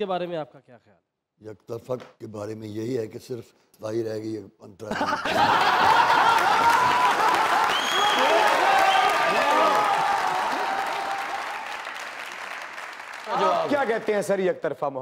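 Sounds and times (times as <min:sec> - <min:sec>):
audience applauding: 0:05.3 - 0:14.5
voices cheering: 0:05.6 - 0:14.1.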